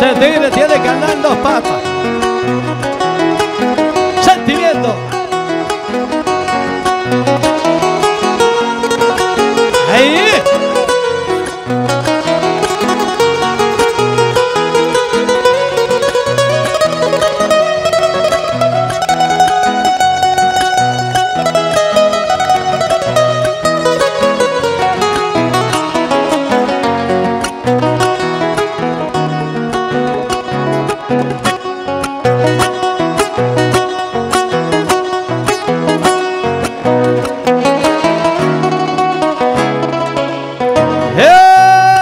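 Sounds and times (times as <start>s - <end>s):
acoustic guitar playing: 0.0s - 42.0s
person crying out: 41.2s - 42.0s.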